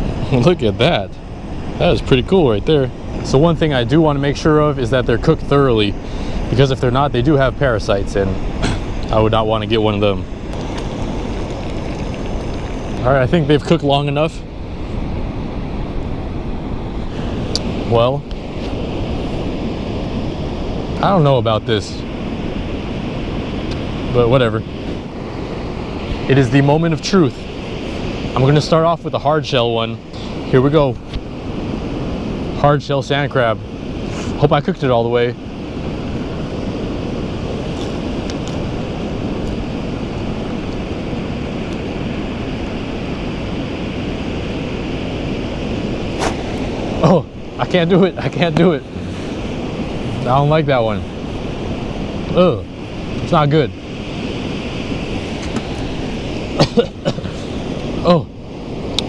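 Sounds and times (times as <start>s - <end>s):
ocean surf rushing: 0.0s - 59.0s
wind buffeting microphone: 0.0s - 59.0s.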